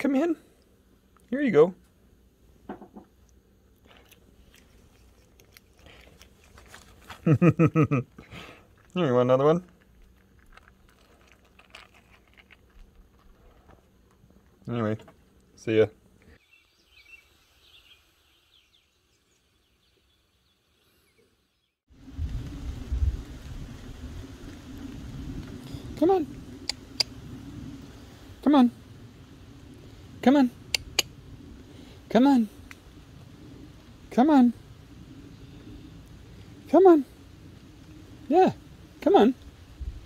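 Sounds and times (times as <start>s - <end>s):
chipmunk crunching a peanut: 2.9s - 15.6s, 26.6s - 27.2s, 30.6s - 31.2s
low rumble: 21.9s - 40.0s.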